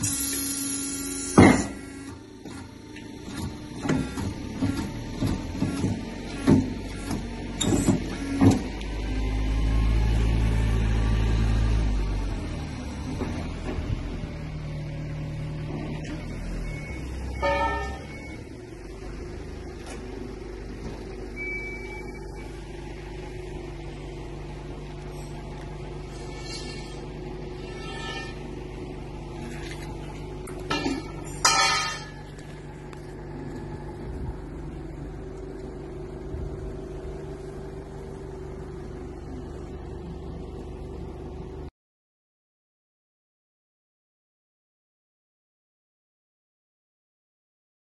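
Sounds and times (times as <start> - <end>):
electric motor humming: 0.0 - 7.3
tyre changer humming: 0.0 - 41.7.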